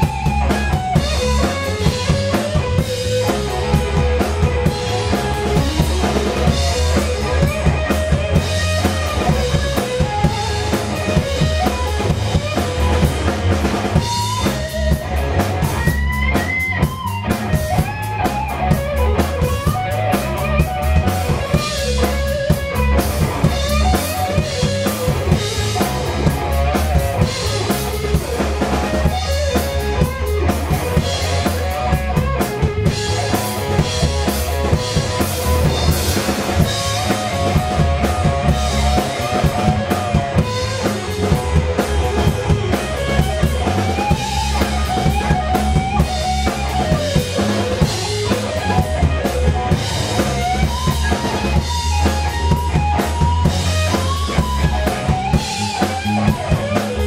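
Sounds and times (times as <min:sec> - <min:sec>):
bass guitar: 0:00.0 - 0:57.0
drum kit: 0:00.0 - 0:57.0
electric guitar solo: 0:00.0 - 0:57.0.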